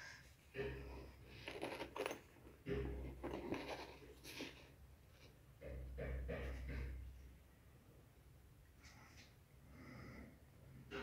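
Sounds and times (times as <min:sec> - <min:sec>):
pencil case rustling: 0:01.3 - 0:02.4, 0:03.1 - 0:04.7.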